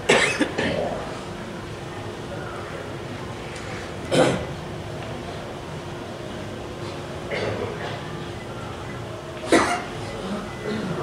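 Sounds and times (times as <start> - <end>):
man coughing: 0.1 - 0.9, 9.5 - 11.0.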